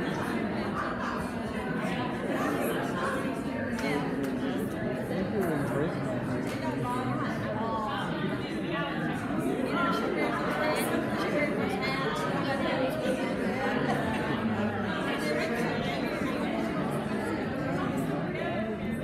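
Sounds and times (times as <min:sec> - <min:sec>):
crowd murmur in echoing room: 0:00.0 - 0:19.0.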